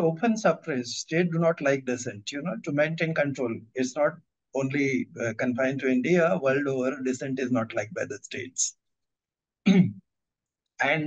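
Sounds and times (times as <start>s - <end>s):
man clearing throat: 9.7s - 10.0s.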